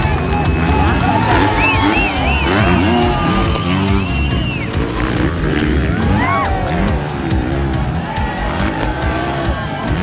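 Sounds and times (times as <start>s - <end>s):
dirt bike engines revving: 0.0s - 10.0s
loud music with steady beat: 0.0s - 10.0s.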